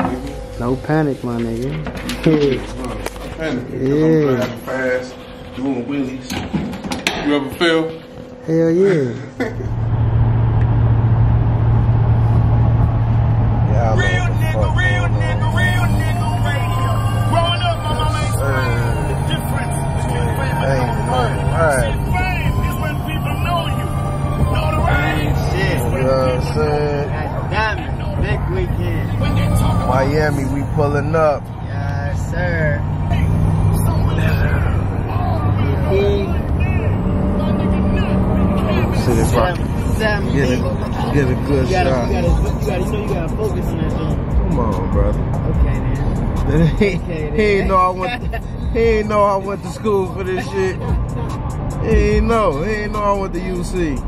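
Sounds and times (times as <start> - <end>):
people talking: 0.0 - 6.5, 7.1 - 9.6, 13.7 - 54.0
steady hum: 0.0 - 54.0
truck cabin road drone: 9.4 - 54.0.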